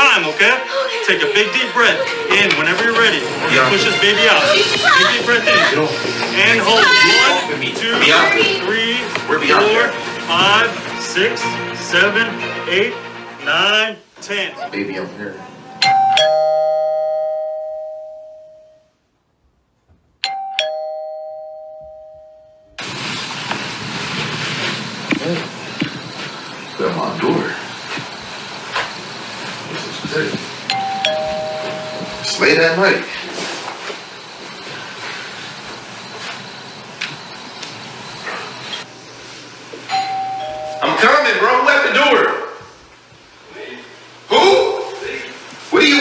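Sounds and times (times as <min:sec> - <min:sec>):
ding-dong doorbell chime: 0:15.8 - 0:18.8, 0:20.2 - 0:22.8, 0:30.7 - 0:32.4, 0:39.9 - 0:41.2
steady rush of noise: 0:22.8 - 0:33.2.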